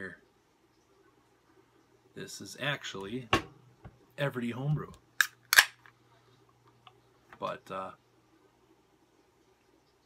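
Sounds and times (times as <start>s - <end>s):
can pull tab snapping open: 5.2s - 5.8s.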